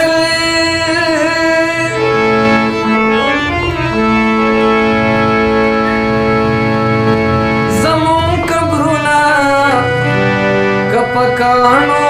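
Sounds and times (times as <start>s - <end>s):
man singing: 0.0s - 3.3s, 7.7s - 10.2s, 10.8s - 12.0s
harmonium playing: 0.0s - 12.0s.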